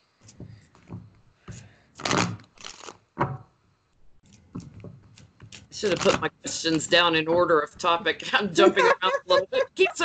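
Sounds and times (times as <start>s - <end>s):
cards shuffled by hand: 1.5s - 3.0s, 5.1s - 6.9s.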